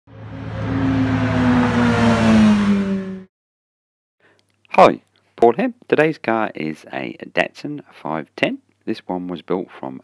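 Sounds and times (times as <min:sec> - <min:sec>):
car engine at high revs: 0:00.1 - 0:03.3.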